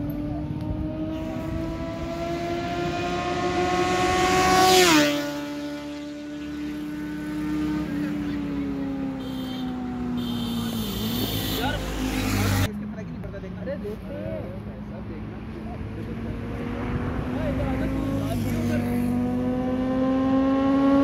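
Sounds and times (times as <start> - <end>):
motorcycle passing by at speed: 0.0 - 12.7, 15.7 - 21.0.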